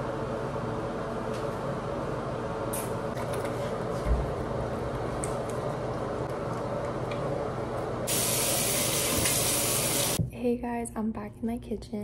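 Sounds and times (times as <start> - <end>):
tap water running: 8.1 - 10.2.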